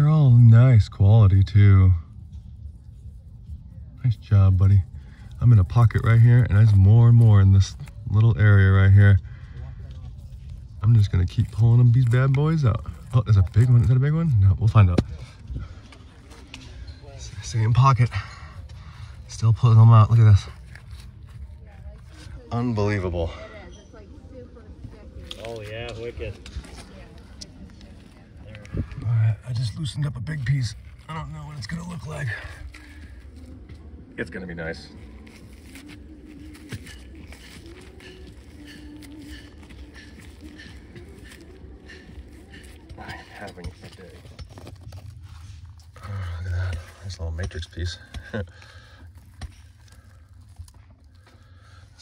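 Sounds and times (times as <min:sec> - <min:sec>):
crumbling soil crackles and scrapes: 0:00.0 - 0:23.4, 0:24.9 - 0:52.0
faint wavering hum: 0:25.9 - 0:52.0.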